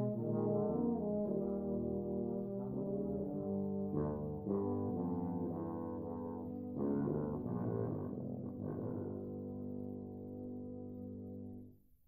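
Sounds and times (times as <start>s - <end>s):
tubas playing sustained chords: 0.0s - 11.7s.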